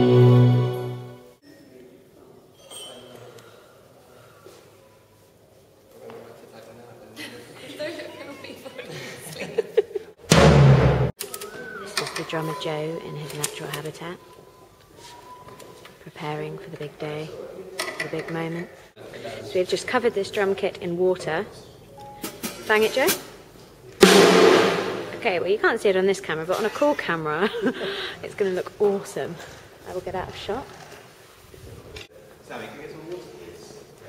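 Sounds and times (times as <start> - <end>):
drum hit with deep ring: 10.3 - 11.1, 24.0 - 25.3.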